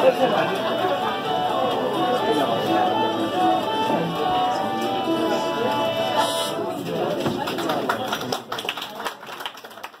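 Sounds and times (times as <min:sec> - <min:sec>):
pub session tune: 0:00.0 - 0:07.4
chatter: 0:00.0 - 0:10.0
scattered handclaps: 0:06.8 - 0:10.0.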